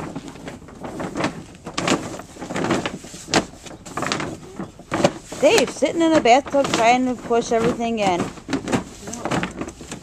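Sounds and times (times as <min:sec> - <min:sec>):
plastic liner crinkling: 0:00.0 - 0:10.0.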